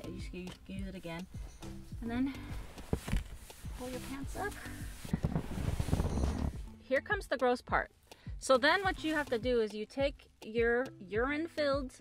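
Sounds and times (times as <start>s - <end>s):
clothing rustling: 0.9s - 6.8s.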